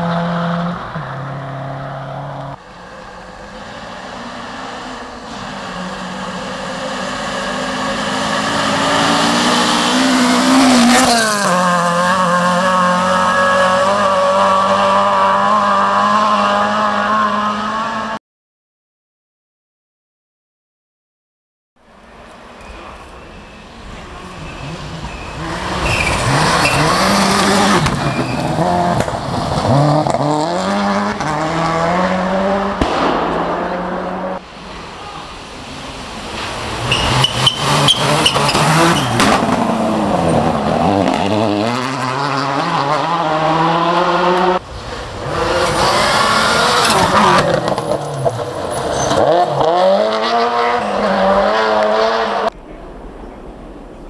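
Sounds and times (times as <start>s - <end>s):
rally car engines revving: 0.0s - 18.2s, 22.0s - 52.6s.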